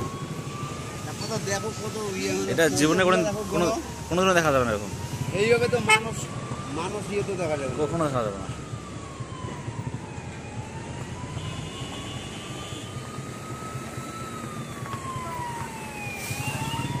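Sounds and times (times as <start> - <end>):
siren-like wail: 0.0 - 17.0.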